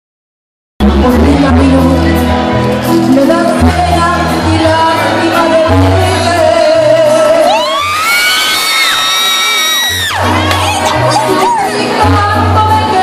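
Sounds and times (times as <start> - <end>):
woman singing: 0.8 - 8.0, 10.8 - 13.0
live band with pulsing bass: 0.8 - 13.0
audience shouting: 7.4 - 12.0.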